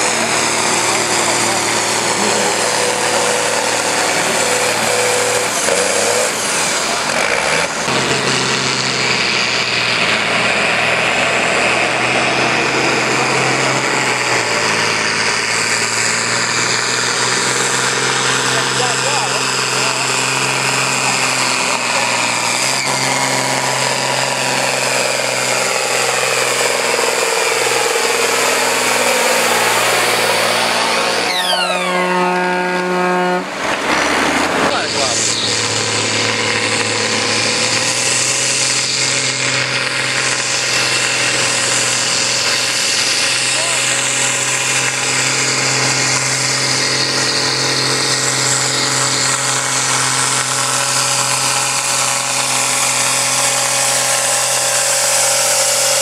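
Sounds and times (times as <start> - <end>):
tractor diesel engine at full load: 0.0 - 56.0.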